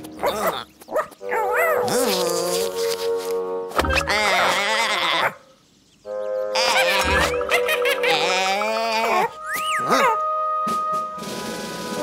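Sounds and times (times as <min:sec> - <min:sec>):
held music chord: 0:06.1 - 0:12.0
cartoon monkey vocal chatter: 0:06.6 - 0:09.3.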